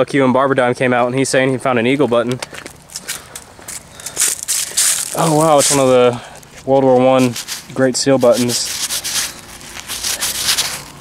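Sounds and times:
rustling in grass and dry leaves: 2.5 - 11.0.

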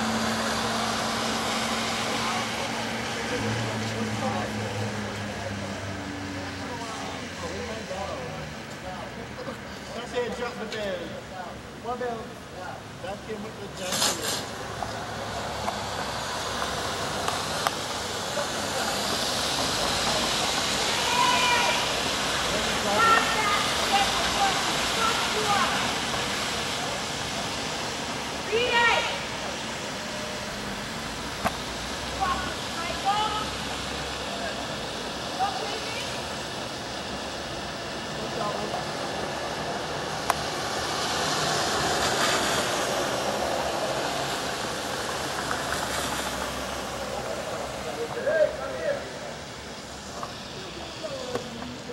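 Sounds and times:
traffic passing: 0.0 - 51.9.

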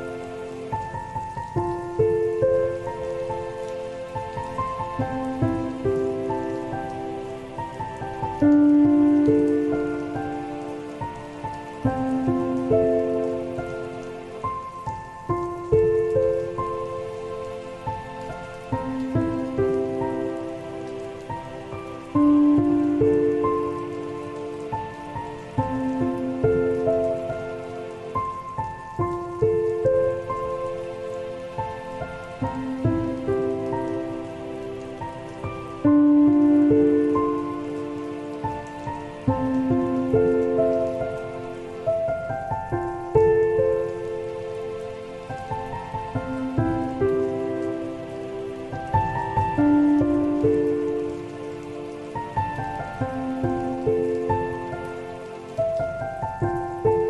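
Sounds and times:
falling rain: 0.0 - 57.0
slow solo piano melody: 0.0 - 57.0.

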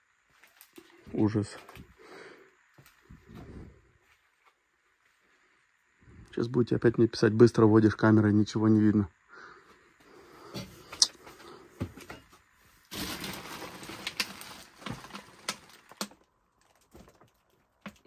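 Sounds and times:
clicks and knocks of junk: 11.8 - 18.0
plastic bags rustling: 12.8 - 17.4.

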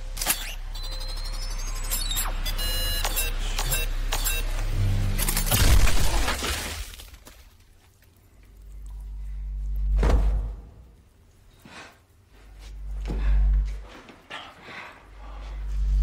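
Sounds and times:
sharp mechanical clicks: 0.0 - 4.6
low droning film score: 0.0 - 6.4, 7.2 - 16.0
brief electronic tone: 0.3 - 5.0.

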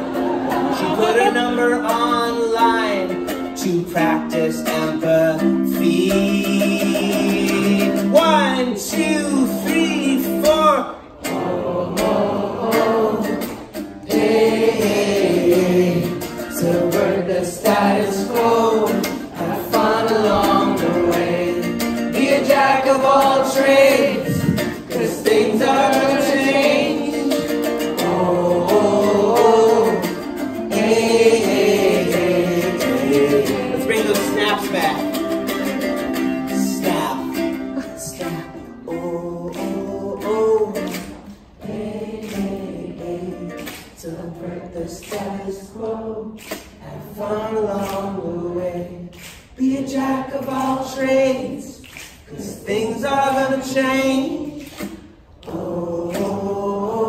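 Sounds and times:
person singing: 0.0 - 13.5, 14.1 - 41.4
ukulele strumming: 0.0 - 57.0.

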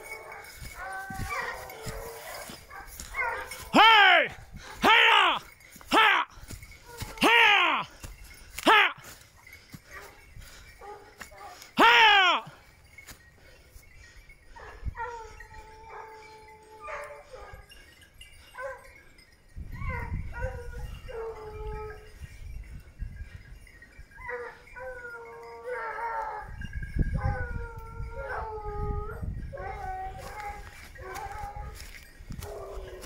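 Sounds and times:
hounds baying: 0.0 - 22.4, 23.3 - 33.0.

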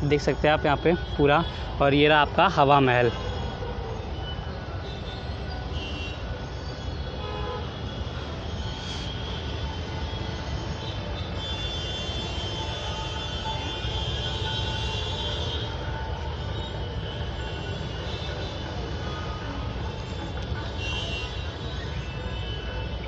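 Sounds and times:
distant road traffic hum: 0.0 - 23.0.

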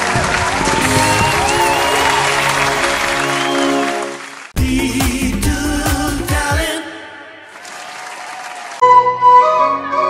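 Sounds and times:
applause: 0.0 - 4.6, 7.5 - 8.8
celebratory music with held chords: 0.8 - 6.4.

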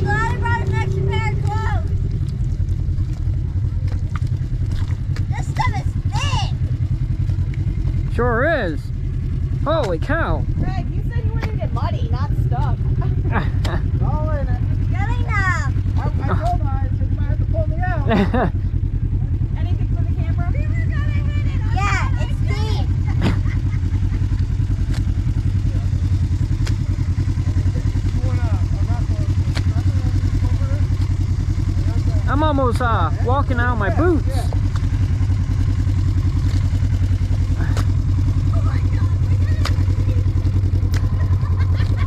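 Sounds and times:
people talking: 0.0 - 2.0, 5.3 - 6.6, 9.6 - 18.4, 19.6 - 23.5, 27.6 - 30.9, 31.8 - 34.6, 37.6 - 40.4
engine idling: 0.0 - 42.0.

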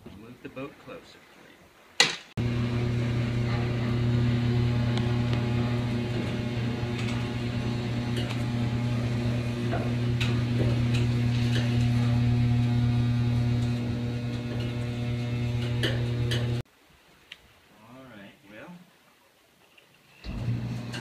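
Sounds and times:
electric motor humming: 2.4 - 16.6, 20.2 - 21.0.

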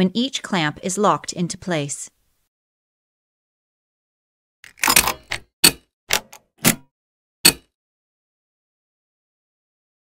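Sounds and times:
plastic clips clicking shut: 4.7 - 6.8.

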